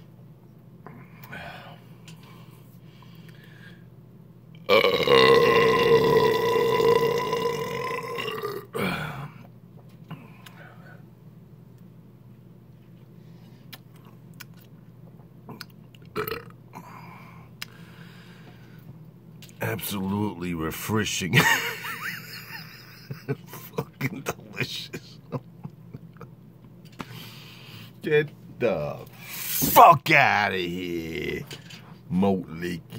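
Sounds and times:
man burping: 4.6s - 9.5s, 15.5s - 16.8s.

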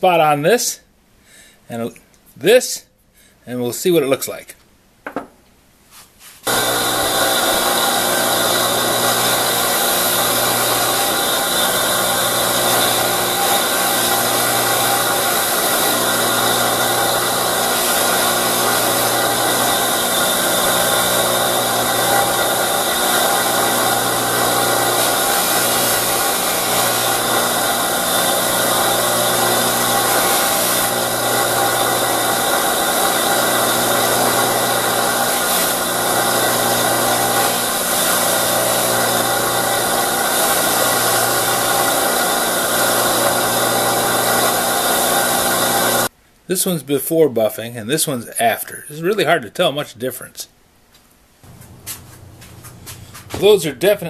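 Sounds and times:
bench buffer motor whirring: 6.5s - 46.1s, 51.5s - 53.6s.

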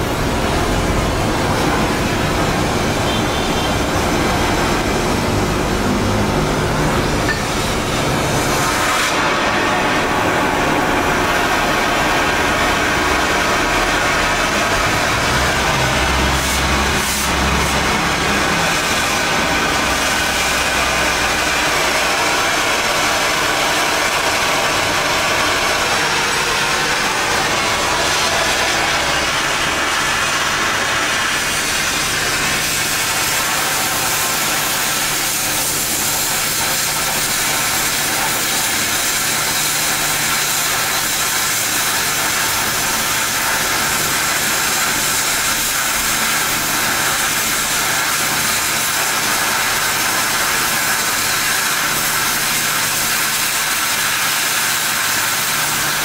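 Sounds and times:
gas torch hissing: 0.0s - 56.0s.

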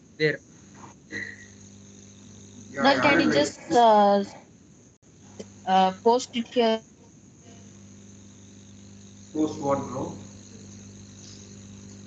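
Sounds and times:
low electrical hum: 0.0s - 12.0s
high-pitched ringing: 1.1s - 4.2s, 7.5s - 12.0s.

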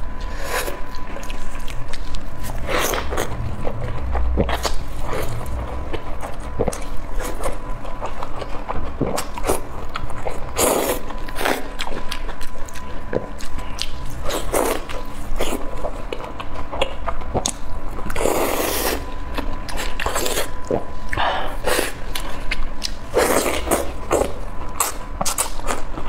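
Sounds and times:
chewing with wet mouth sounds: 0.0s - 26.0s.

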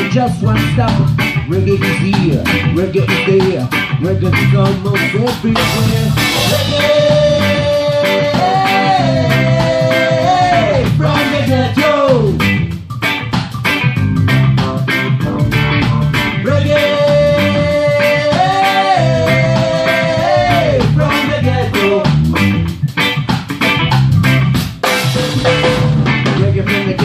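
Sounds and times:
offbeat electric guitar chops: 0.0s - 27.0s
reggae band playing: 0.0s - 27.0s.

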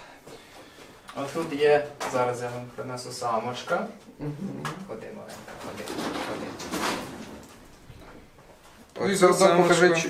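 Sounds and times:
scuffling and rattling in wire cage: 5.5s - 7.6s.

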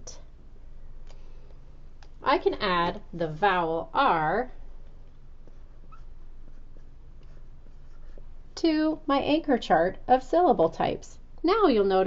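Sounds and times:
marker scratching on whiteboard: 5.4s - 8.4s.

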